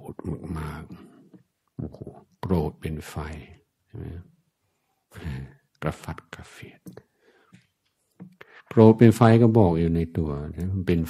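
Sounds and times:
man speaking softly: 0.0s - 1.2s, 1.8s - 4.3s, 5.1s - 7.1s.

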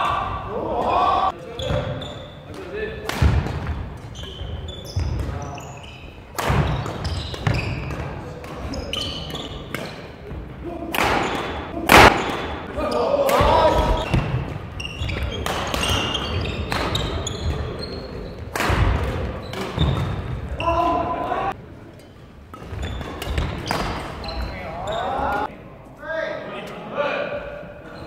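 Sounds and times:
players shouting: 0.0s - 1.4s, 10.6s - 14.4s, 20.5s - 21.6s
shoes squeaking on wooden court: 0.8s - 2.7s, 3.4s - 25.5s
rackets striking shuttlecock: 2.5s - 4.3s, 6.3s - 10.1s, 10.9s - 12.7s, 15.2s - 17.6s, 18.4s - 20.4s, 22.5s - 24.1s.

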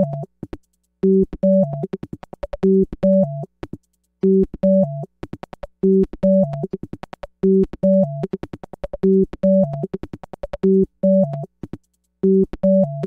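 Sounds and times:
clicky electronic percussion: 0.0s - 13.0s.

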